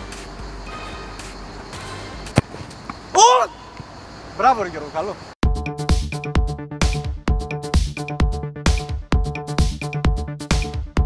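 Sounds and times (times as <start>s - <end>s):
football kicked thud: 2.3s - 2.7s
person shouting: 3.1s - 3.8s.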